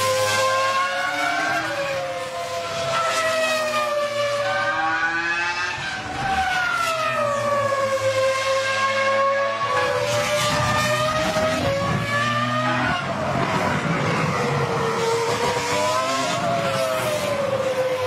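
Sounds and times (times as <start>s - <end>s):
racing car engine at high revs: 0.0s - 18.0s.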